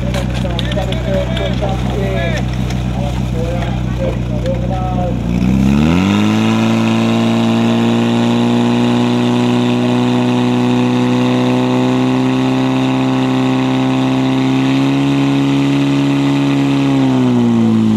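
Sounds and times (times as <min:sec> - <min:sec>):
pump engine revving: 0:00.0 - 0:17.9.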